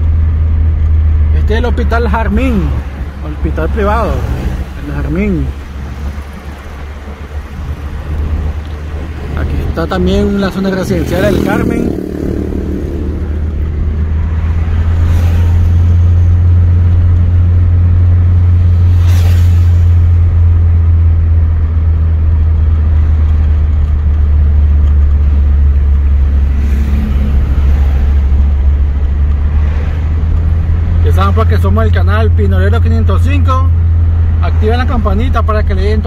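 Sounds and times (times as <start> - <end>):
car driving heard from cabin: 0.0 - 36.0
vehicles passing: 0.0 - 36.0.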